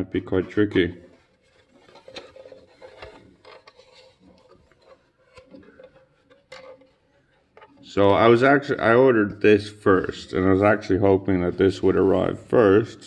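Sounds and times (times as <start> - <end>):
plastic rubbing and tapping: 0.2 - 9.4.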